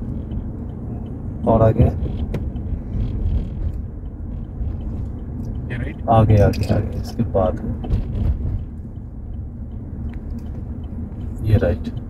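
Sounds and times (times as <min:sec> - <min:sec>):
car rumble inside cabin: 0:00.0 - 0:12.0.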